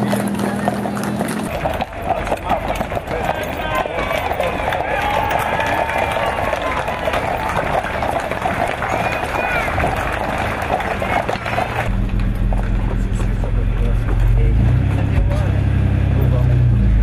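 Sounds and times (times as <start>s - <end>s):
hooves clattering on pavement: 0.0s - 15.6s
crowd voices: 0.0s - 17.0s.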